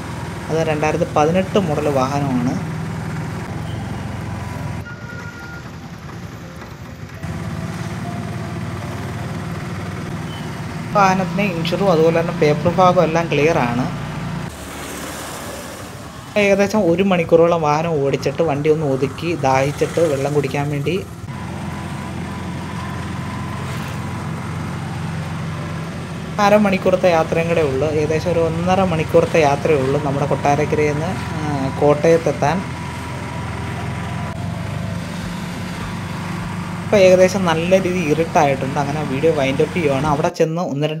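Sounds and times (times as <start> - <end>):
vehicle engine and road drone: 0.0 - 40.3.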